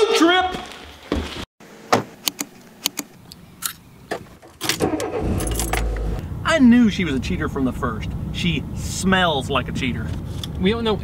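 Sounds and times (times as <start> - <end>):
car engine starting and running: 4.4 - 8.9
keys jangling: 4.6 - 6.1.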